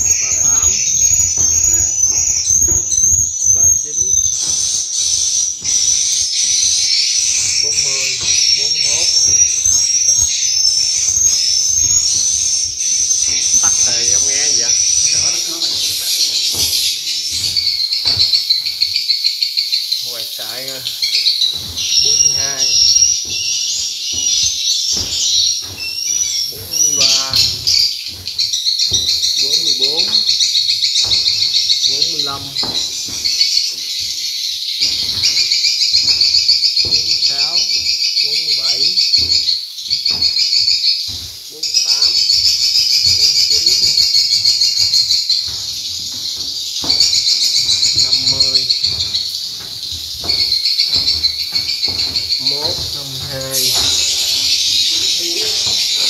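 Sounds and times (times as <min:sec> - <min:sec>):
swiftlets chirring: 0:00.0 - 0:56.0
twittering bird chirps: 0:00.0 - 0:56.0.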